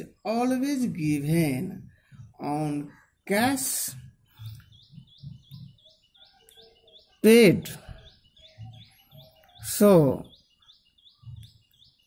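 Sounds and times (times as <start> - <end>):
small bird chirping: 0.0 - 12.0.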